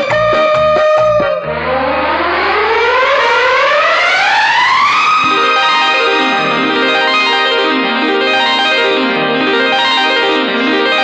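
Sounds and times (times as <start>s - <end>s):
rising synthesizer sweep: 1.2s - 8.4s.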